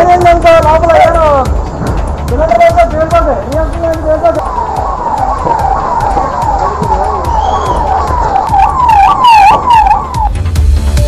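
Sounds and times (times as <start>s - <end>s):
emergency siren yelping: 0.0s - 10.4s
sharp cracks: 4.4s - 10.3s.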